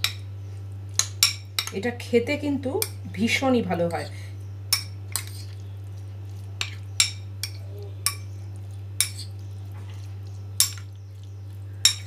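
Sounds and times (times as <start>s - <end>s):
spoon clinking against glass bowl: 10.6s - 10.9s.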